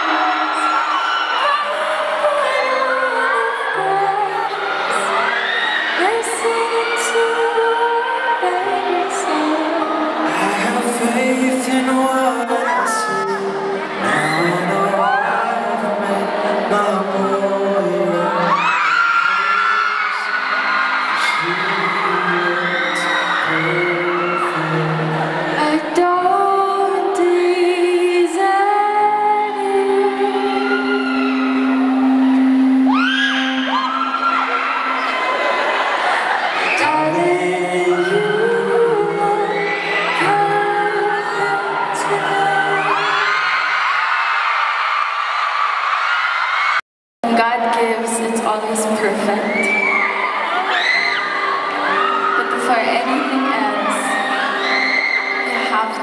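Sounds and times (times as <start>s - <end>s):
person singing: 0.0s - 5.3s, 5.9s - 43.6s, 47.2s - 56.0s
audience screams and whoops: 0.0s - 46.8s, 49.0s - 56.0s
live band playing slow song: 3.6s - 43.4s.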